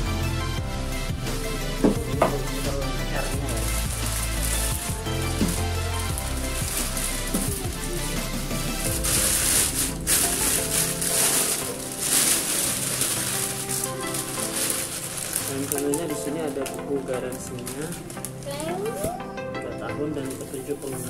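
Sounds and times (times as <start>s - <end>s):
background music with bass line: 0.0s - 21.0s
plastic wrapping crinkling: 1.3s - 19.3s, 20.2s - 21.0s.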